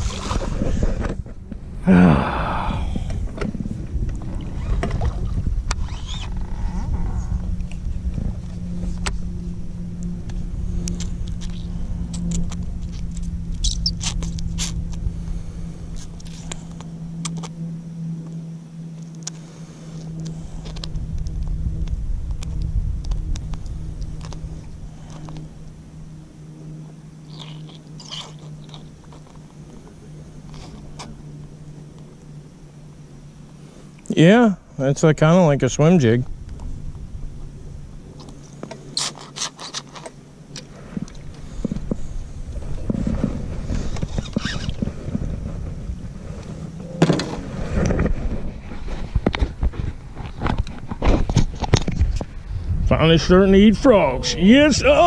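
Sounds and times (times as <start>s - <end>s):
low hum and rumble: 0.0s - 55.0s.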